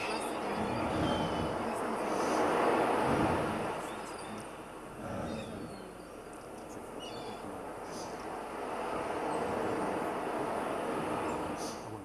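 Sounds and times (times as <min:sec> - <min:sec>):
rushing noise: 0:00.0 - 0:12.0.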